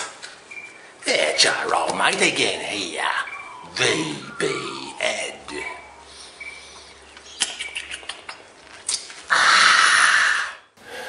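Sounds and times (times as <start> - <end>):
clicks and smacks of lips: 7.1 - 9.2.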